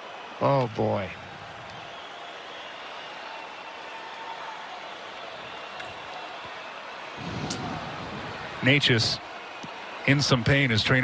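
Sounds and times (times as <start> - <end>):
murmur of arena crowd: 0.0 - 11.0.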